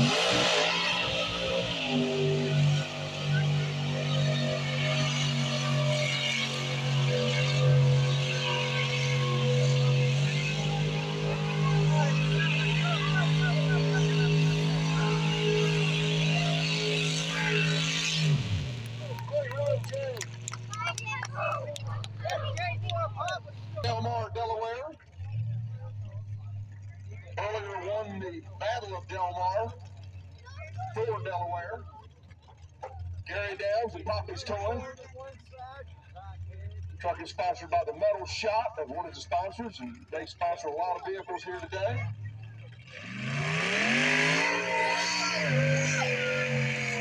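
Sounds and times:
truck engine revving: 0.0s - 47.0s
voices: 0.0s - 47.0s.

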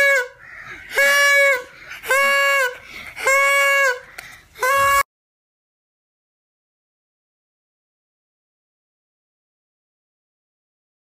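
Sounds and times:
noisemaker honking: 0.0s - 5.0s.

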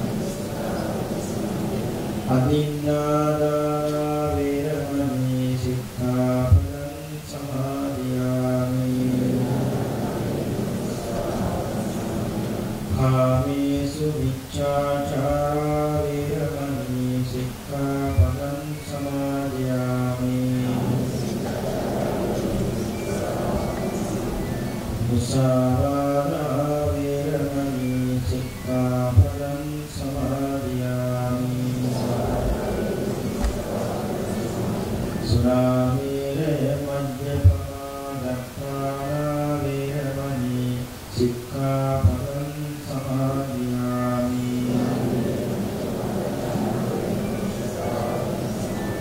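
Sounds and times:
person chanting: 0.0s - 49.0s.

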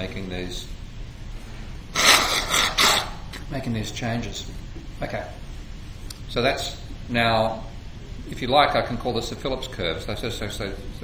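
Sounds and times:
man blowing his nose: 1.9s - 3.2s.

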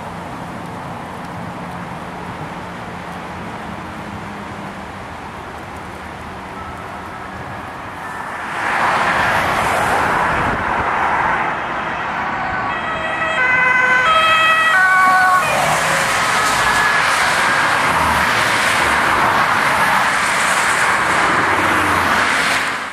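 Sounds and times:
road traffic and tyres: 0.0s - 22.9s
ambulance two-tone siren: 6.5s - 10.4s, 11.4s - 18.3s.

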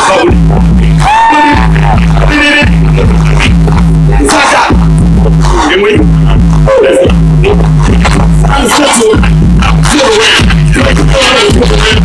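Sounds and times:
heavy bass notes: 0.0s - 12.0s
live hip hop music: 0.0s - 12.0s
falling pitched phrase: 0.3s - 12.0s.

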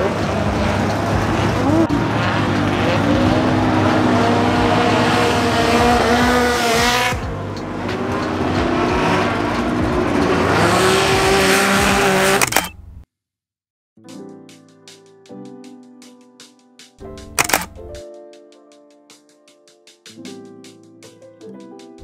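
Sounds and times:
car engine revving: 0.0s - 13.0s.

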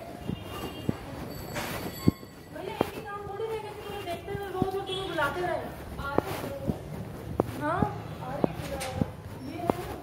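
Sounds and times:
street background noise: 0.0s - 10.0s
footsteps on wet lane: 0.1s - 10.0s.

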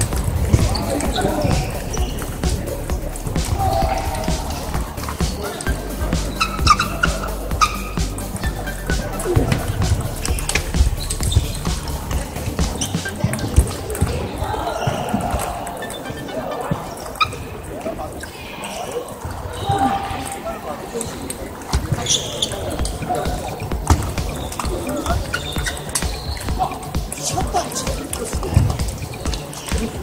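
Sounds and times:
murmur of voices: 0.0s - 30.0s
table tennis balls clicking: 21.0s - 30.0s.

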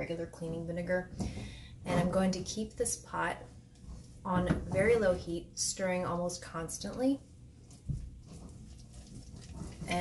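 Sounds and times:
spatula stirring and scraping paste: 0.3s - 5.4s, 7.0s - 10.0s.

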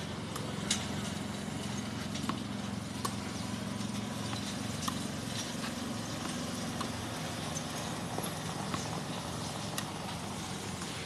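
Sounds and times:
ball struck by rackets: 2.2s - 3.3s, 4.4s - 7.0s.

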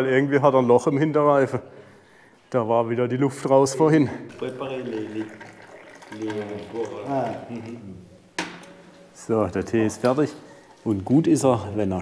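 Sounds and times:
tea pouring and splashing into glasses: 3.8s - 11.6s.

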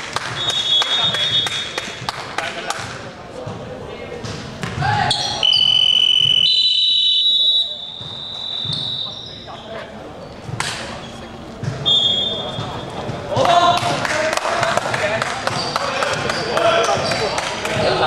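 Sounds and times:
shrill high-pitched tone: 5.1s - 9.1s.

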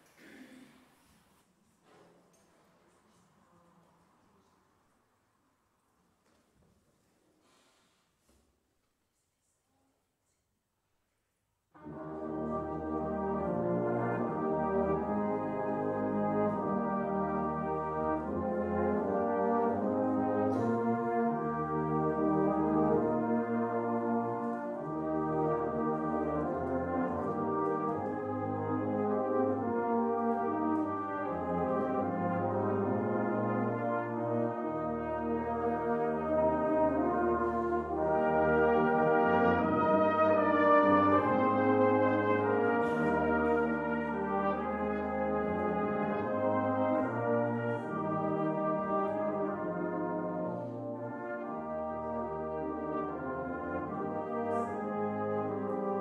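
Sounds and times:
brass band playing a hymn: 11.8s - 56.0s.

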